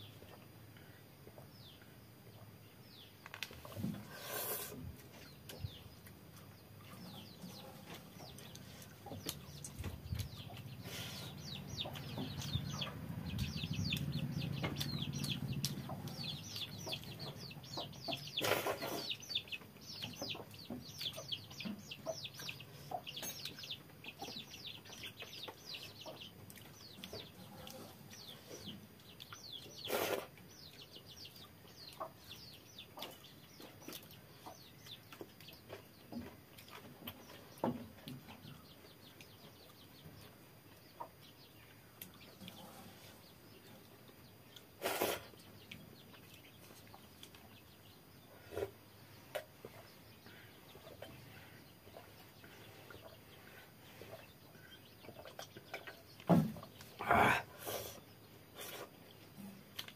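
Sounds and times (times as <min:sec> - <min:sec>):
chickens clucking: 0:00.0 - 0:59.9
man drinking and eating sounds: 0:44.8 - 0:45.3, 0:57.0 - 0:58.0.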